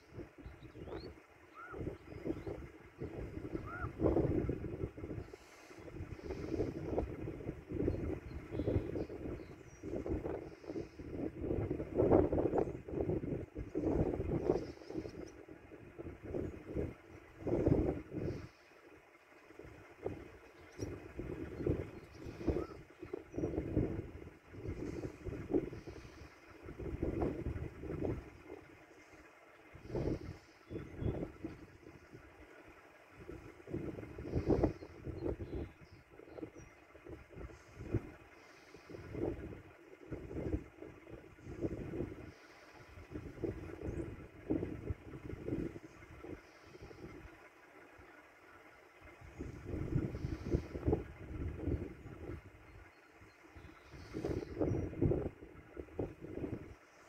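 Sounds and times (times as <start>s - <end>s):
car engine idling: 0.0s - 57.0s
wind buffeting microphone: 0.0s - 57.0s.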